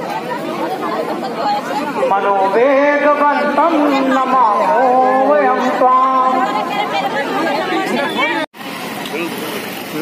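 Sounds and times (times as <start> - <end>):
crowd chatter: 0.0 - 10.0
street noise: 0.0 - 10.0.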